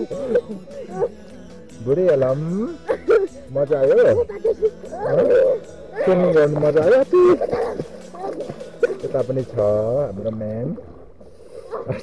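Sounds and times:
light water splashing: 1.9 - 12.0
children calling out: 4.1 - 6.2, 7.2 - 8.6.

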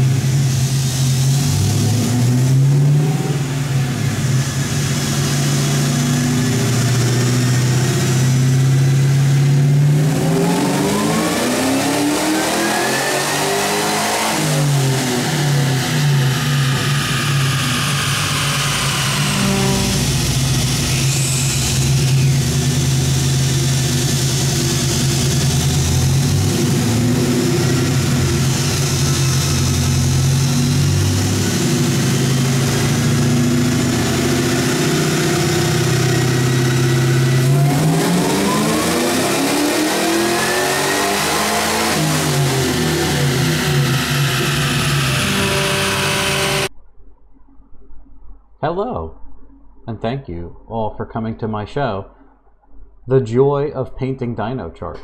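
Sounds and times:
supercharged engine revving: 0.0 - 46.7.

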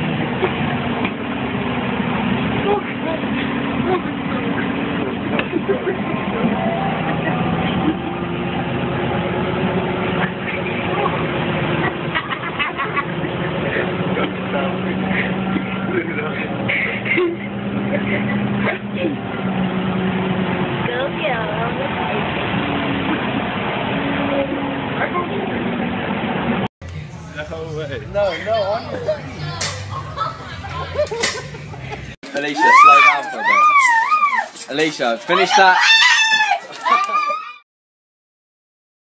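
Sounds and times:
transit vehicle motor drone: 0.0 - 32.2
indistinct voices: 2.5 - 20.0, 26.8 - 37.2.

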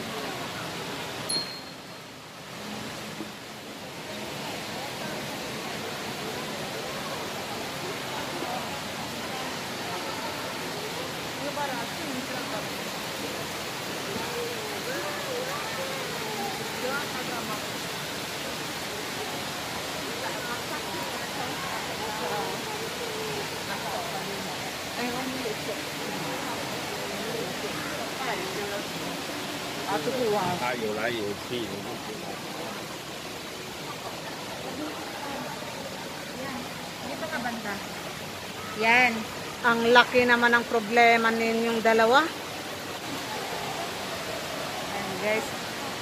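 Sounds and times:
faint chatter of passers-by: 2.5 - 40.0, 42.3 - 46.0.

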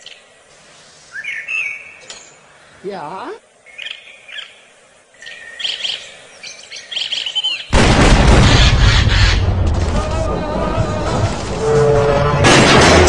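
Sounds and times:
songbirds chirping and trilling: 0.0 - 7.8
harsh blast of noise: 7.8 - 13.0.

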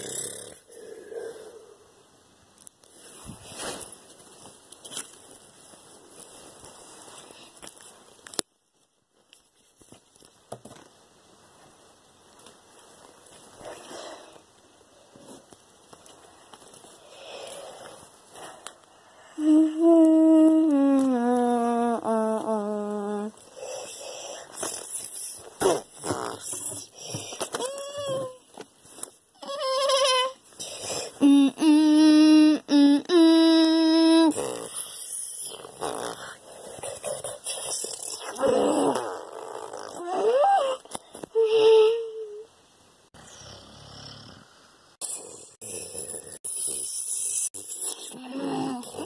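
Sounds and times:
person growling: 19.4 - 23.4, 37.9 - 39.1, 48.1 - 49.0
person humming a long note: 19.4 - 23.4, 31.2 - 34.5.

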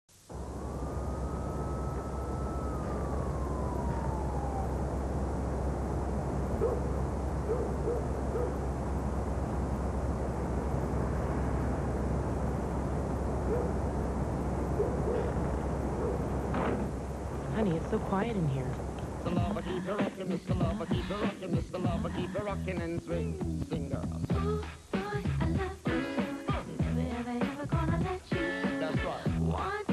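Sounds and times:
low city rumble: 0.1 - 25.9
distant siren wail: 0.2 - 19.9.

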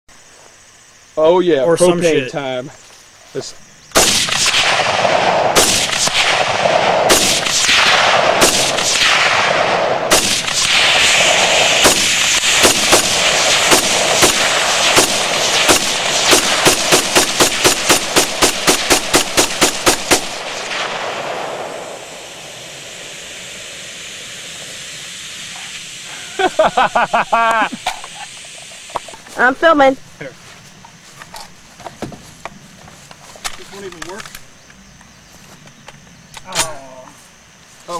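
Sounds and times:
rifle shots with echo: 3.9 - 23.4
gas hissing from tank: 22.0 - 26.6.

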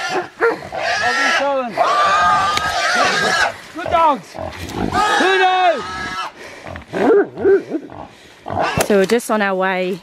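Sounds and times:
pig squealing: 0.0 - 6.4, 7.0 - 8.9.

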